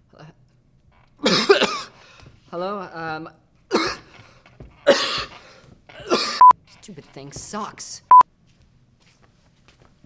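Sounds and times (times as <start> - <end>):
man coughing: 1.2 - 2.0, 3.7 - 4.2, 4.8 - 6.5.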